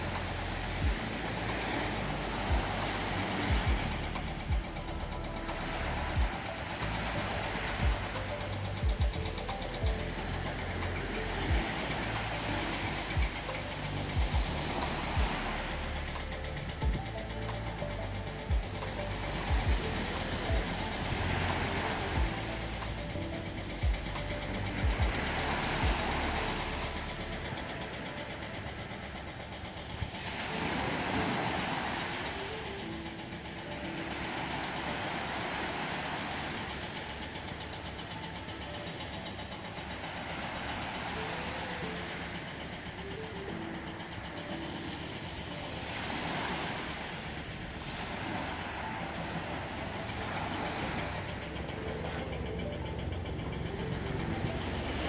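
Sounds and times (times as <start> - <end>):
low steady rumble: 0.0 - 55.0
small waves washing on beach: 0.0 - 55.0.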